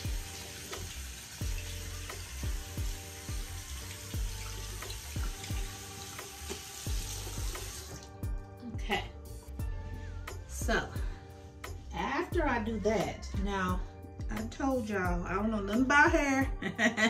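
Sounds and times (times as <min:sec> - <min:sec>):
tap water running into sink: 0:00.0 - 0:08.2
background music with beat: 0:00.0 - 0:17.0.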